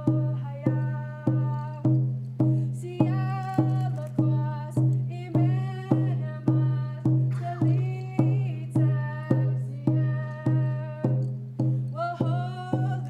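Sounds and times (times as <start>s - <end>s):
person singing: 0.0s - 1.9s, 2.9s - 11.2s
hand drum beat: 0.0s - 13.0s.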